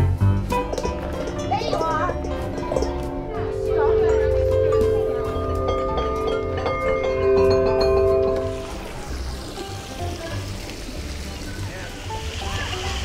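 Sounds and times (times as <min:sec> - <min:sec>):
metal chimes struck with mallet: 0:00.5 - 0:08.9.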